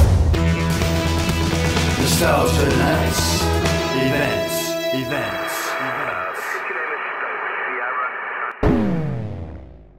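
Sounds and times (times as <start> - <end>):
radio static hiss: 2.2 - 8.6.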